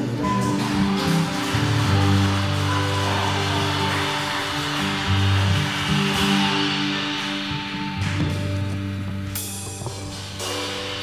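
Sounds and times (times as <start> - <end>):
worship band playing held chords: 0.0 - 11.0.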